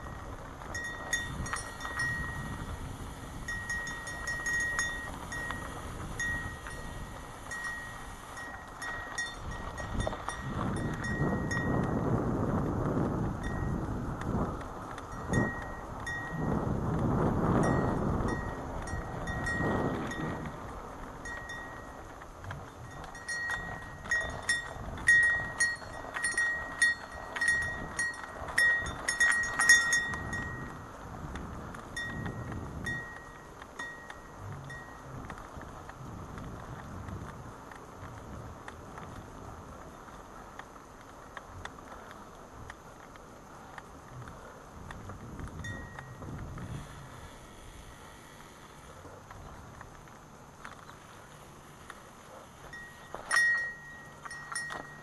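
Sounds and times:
wind rushing over microphone: 0.0s - 55.0s
light metallic clinks: 0.7s - 2.6s, 3.4s - 11.9s, 15.1s - 16.5s, 22.7s - 30.8s, 32.0s - 35.1s, 45.6s - 46.2s, 52.6s - 55.0s.

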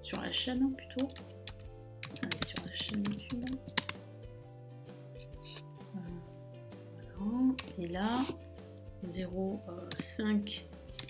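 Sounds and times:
quiet background music: 0.0s - 11.0s
computer keyboard typing: 0.1s - 4.0s, 9.8s - 10.2s.

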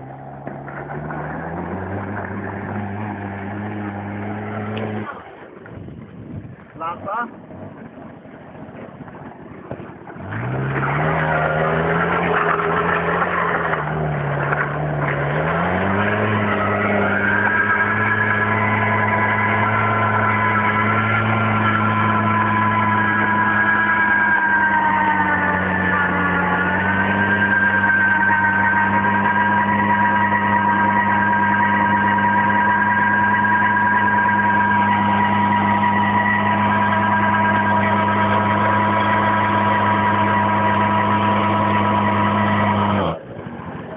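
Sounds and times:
scooter engine revving: 0.0s - 5.8s, 9.7s - 43.3s.

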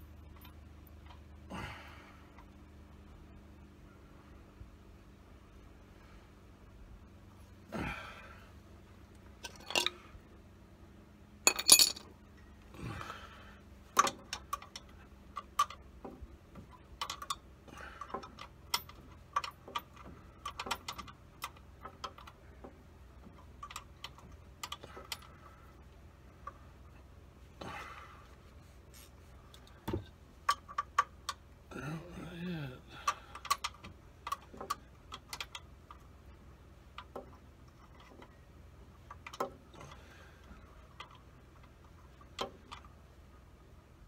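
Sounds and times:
wrench clinking on bolts: 9.4s - 10.0s, 11.5s - 12.1s.

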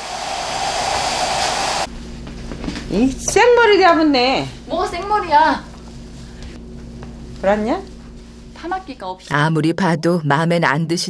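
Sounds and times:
hair dryer blowing: 0.0s - 1.9s.

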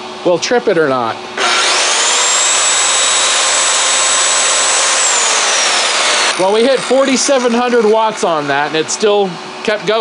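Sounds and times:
circular saw whining: 1.4s - 9.2s.

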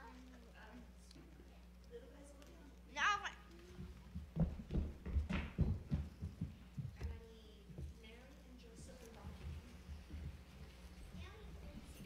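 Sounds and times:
footsteps on stage floor: 3.6s - 12.0s.

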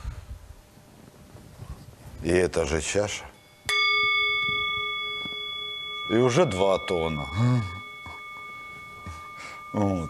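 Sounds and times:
singing bowl ringing: 3.0s - 10.0s.

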